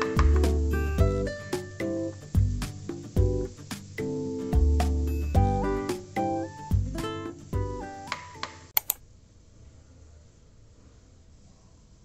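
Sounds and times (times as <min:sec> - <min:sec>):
background guitar music: 0:00.0 - 0:08.7
sharp clicks: 0:08.4 - 0:09.0.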